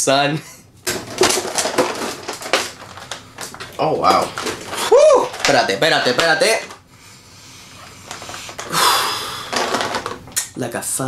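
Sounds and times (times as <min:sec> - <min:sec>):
plastic packaging crinkling: 0:00.8 - 0:06.8, 0:08.0 - 0:10.4.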